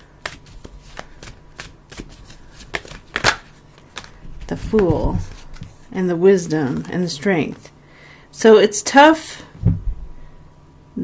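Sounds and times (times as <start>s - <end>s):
cards being shuffled: 0.0s - 7.7s.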